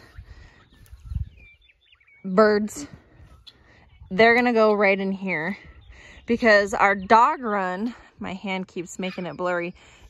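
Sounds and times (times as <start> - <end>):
faint bird chirps: 0.0 - 4.4
low rumbling microphone noise: 0.0 - 8.8.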